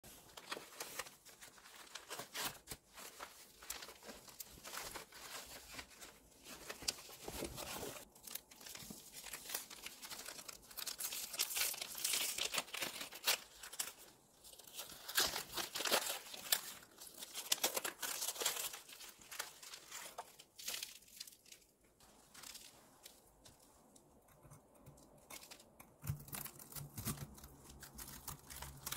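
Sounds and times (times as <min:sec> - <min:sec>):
paper wrapper crinkling and tearing: 0:00.1 - 0:28.9.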